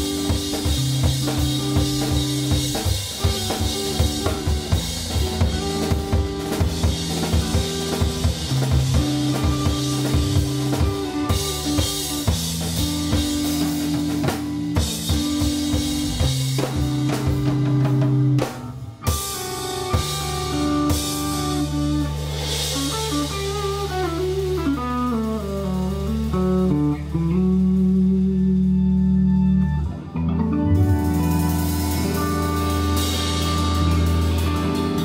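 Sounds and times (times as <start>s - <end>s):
drum kit playing: 0.0s - 35.0s
electric guitar: 0.0s - 35.0s
organ chords: 0.0s - 35.0s.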